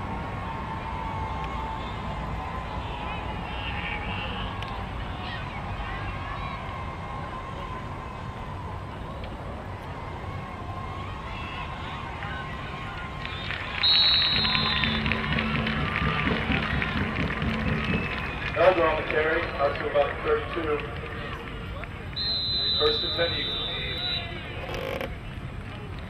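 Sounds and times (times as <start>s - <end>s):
low outdoor rumble: 0.0s - 26.0s
people shouting and cheering: 0.0s - 26.0s
referee's whistle: 13.3s - 15.1s, 22.2s - 24.5s.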